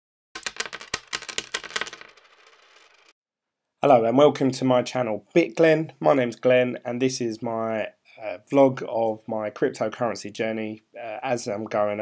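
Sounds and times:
coins dropping and clinking: 0.4 - 3.1.

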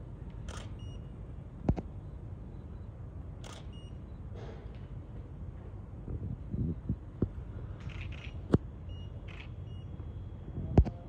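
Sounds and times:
low room rumble: 0.0 - 11.0
camera shutter clicks: 0.5 - 0.8, 3.4 - 3.7.

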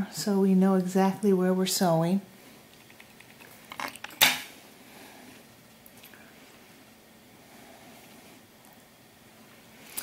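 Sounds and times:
sewing things clattering on glass: 3.1 - 4.4.

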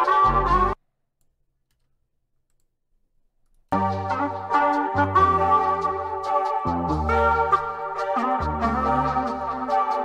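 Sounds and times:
lo-fi music loop: 3.8 - 10.0.

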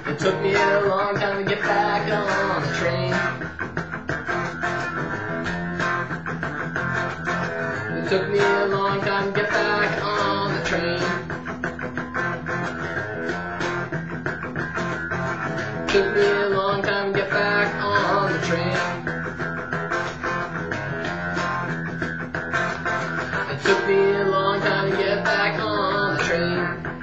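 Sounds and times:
electric guitar strumming: 0.0 - 27.0.

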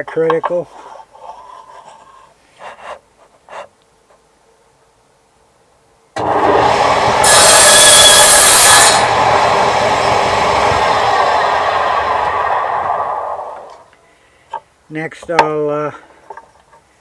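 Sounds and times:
table saw cutting wood: 6.2 - 13.8
table saw running and winding down: 6.2 - 13.8.

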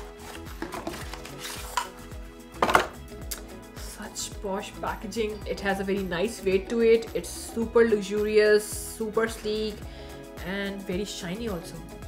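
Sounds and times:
packaging rustling and knocks: 0.0 - 2.0, 2.6 - 3.0
soft background music: 0.0 - 12.0.

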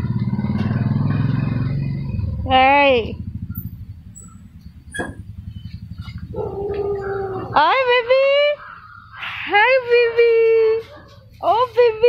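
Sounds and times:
motorcycle engine idling: 0.0 - 12.0
dog whining: 6.3 - 7.7.

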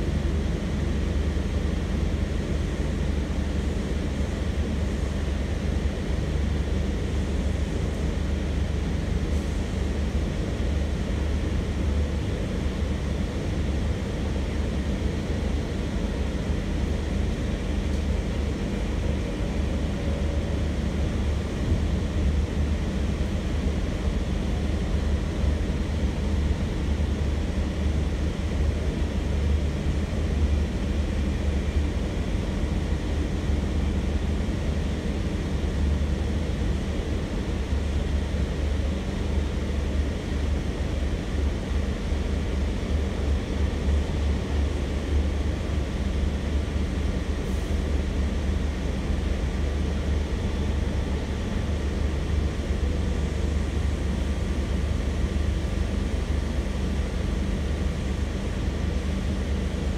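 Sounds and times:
train carriage rumble: 0.0 - 59.9.

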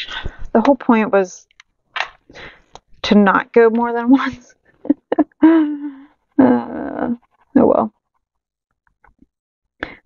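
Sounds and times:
person making wordless vocal sounds: 5.3 - 7.9.

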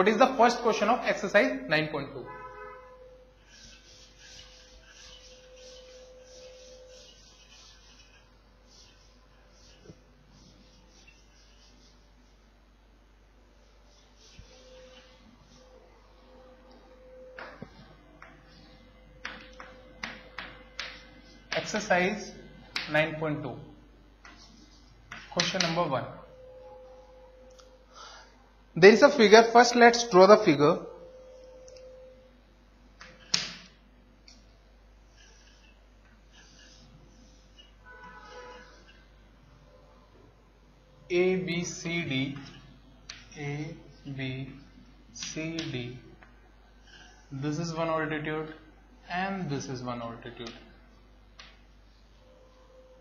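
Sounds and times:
faint steady tone: 2.3 - 12.6, 30.8 - 33.3
duster rubbing on chalkboard: 3.3 - 12.5, 13.6 - 15.8, 24.2 - 25.9, 35.0 - 39.1
chalk tapping on chalkboard: 3.5 - 12.0, 19.2 - 21.9, 22.7 - 23.0, 24.2 - 25.8, 45.2 - 45.8.

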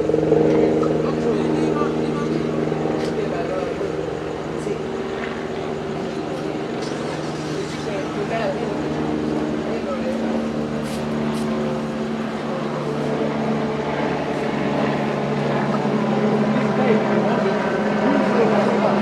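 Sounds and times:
indistinct voices talking: 0.0 - 19.0.

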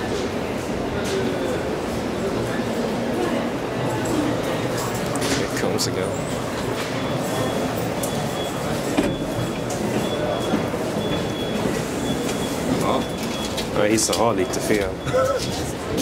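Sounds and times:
elevator running with steady rumble: 0.0 - 16.0
automatic sliding doors opening: 6.3 - 16.0.

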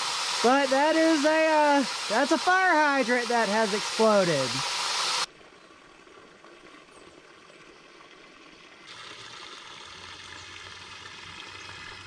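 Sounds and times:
water rushing from fire hydrant: 0.0 - 5.3, 5.9 - 12.0
outdoor background noise: 0.0 - 12.0.

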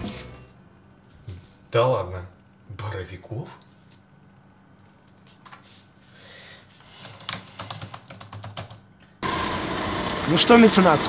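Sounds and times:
typing on laptop keyboard: 6.9 - 8.9.

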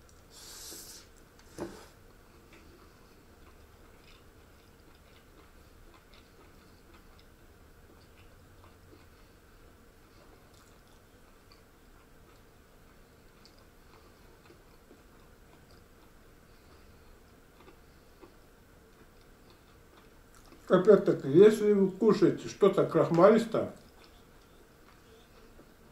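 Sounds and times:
person chewing quietly: 0.0 - 21.2, 23.7 - 25.9
low room hum: 0.0 - 25.9.

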